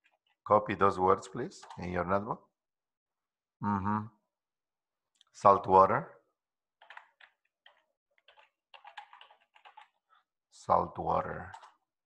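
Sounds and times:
computer keyboard typing: 1.6 - 1.9, 6.8 - 10.0, 11.4 - 11.8.

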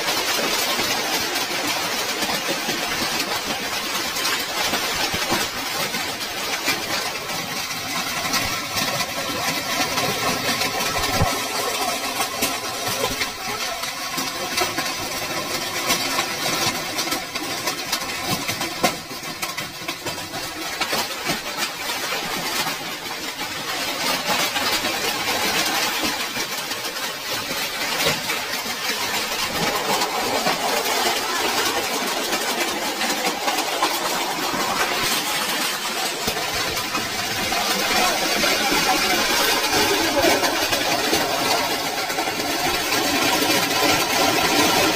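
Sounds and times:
hail clattering on ground and roofs: 0.0 - 44.9.

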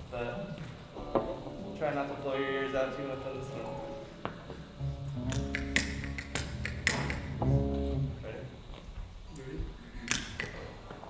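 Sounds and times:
electric guitar: 0.9 - 8.3
band playing: 1.0 - 8.5.

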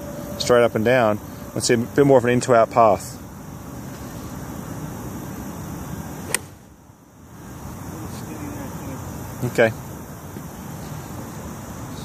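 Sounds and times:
golf club striking ball: 6.2 - 6.7.

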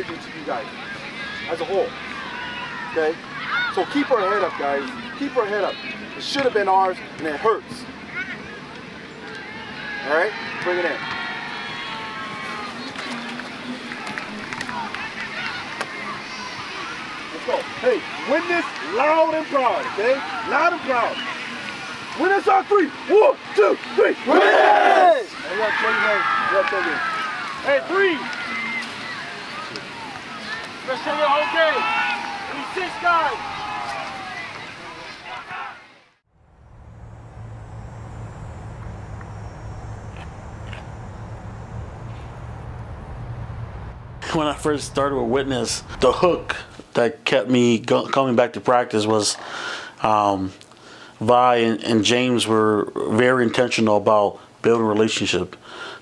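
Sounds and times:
low rumble: 36.3 - 47.0
faint hiss: 36.4 - 47.8, 49.4 - 53.1.

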